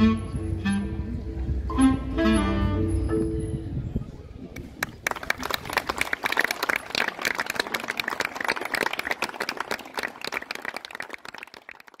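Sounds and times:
many hands clapping: 4.6s - 12.0s.

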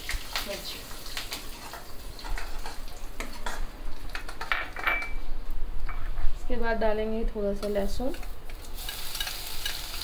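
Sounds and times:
oil sizzling: 0.0s - 4.5s, 7.9s - 10.0s
metal spoon scraping a pan: 8.1s - 10.0s.

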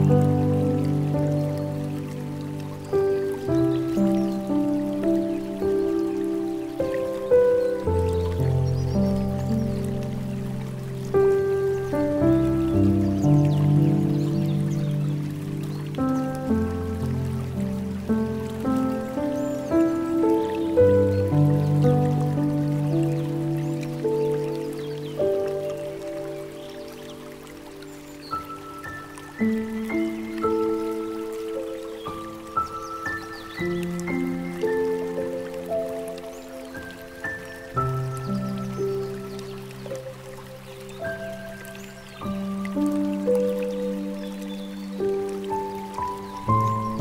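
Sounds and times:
slow solo piano: 0.0s - 47.0s
trickling water: 0.0s - 47.0s.

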